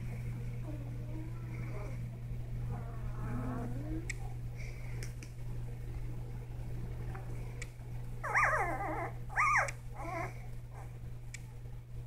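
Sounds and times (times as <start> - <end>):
puppy whimpering: 8.2 - 10.4.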